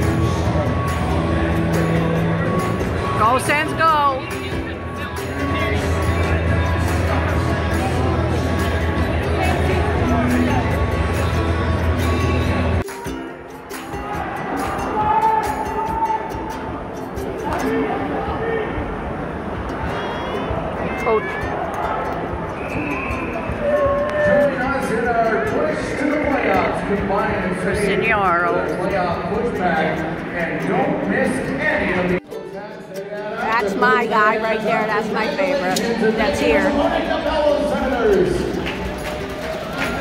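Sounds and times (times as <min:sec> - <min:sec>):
crowd and voices: 0:00.0 - 0:40.0
music over public address: 0:00.0 - 0:40.0.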